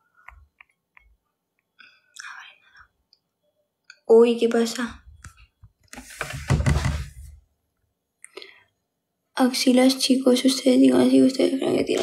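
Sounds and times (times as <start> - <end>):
woman whispering: 2.1 - 3.0.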